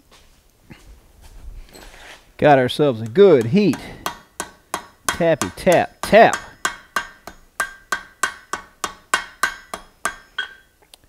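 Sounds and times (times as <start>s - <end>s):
hammer tapping steel on anvil: 3.0s - 10.7s.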